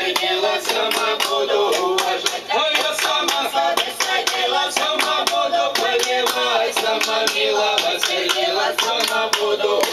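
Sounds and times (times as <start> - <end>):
group of people singing: 0.0 - 9.9
hands clapping in rhythm: 0.0 - 9.9.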